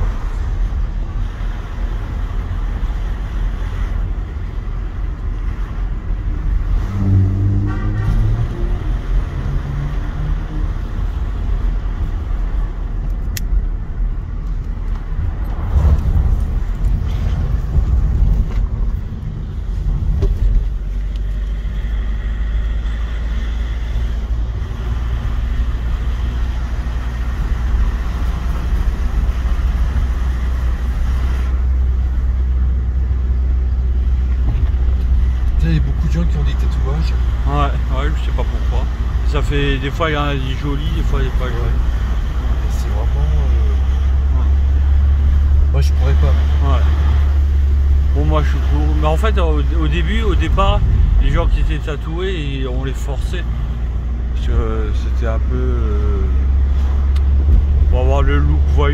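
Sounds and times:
car engine and tyre rumble: 0.0s - 58.9s.

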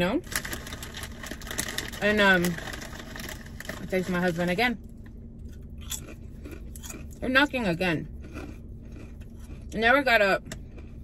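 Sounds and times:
low steady hum: 0.0s - 11.0s
chewing sandwich: 5.4s - 7.2s, 8.1s - 9.8s.

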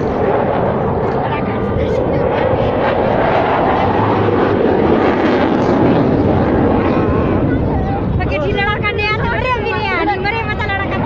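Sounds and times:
crowd voices: 0.0s - 11.0s
fighter jet flying past: 0.0s - 11.0s.

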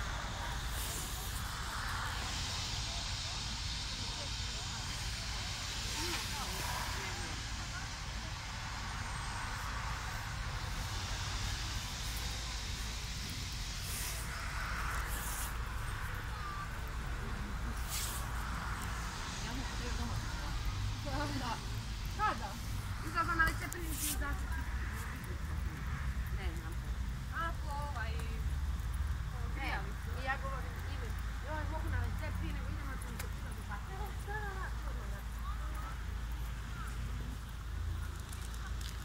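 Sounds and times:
low rumble: 0.0s - 29.3s
faint voices: 0.0s - 39.0s.

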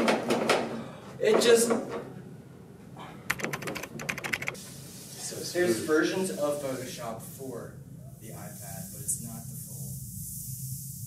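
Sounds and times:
fingers tapping on wooden desk: 3.3s - 4.6s.

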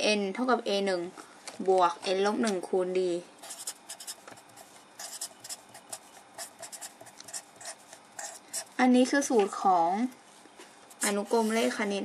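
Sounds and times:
marker pen scratching on paper: 3.4s - 8.8s, 11.0s - 11.9s.

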